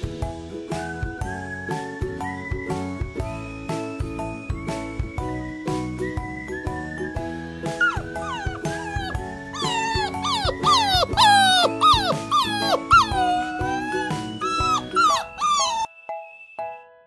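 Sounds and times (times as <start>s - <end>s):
background music: 0.0s - 17.0s
puppy howling: 7.8s - 15.9s.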